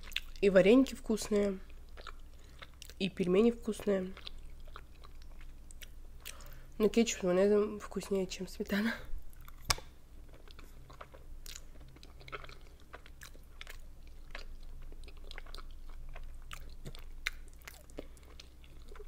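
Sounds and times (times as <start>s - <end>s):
chewing with wet mouth clicks: 0.0s - 0.4s, 1.1s - 6.6s, 9.3s - 19.0s.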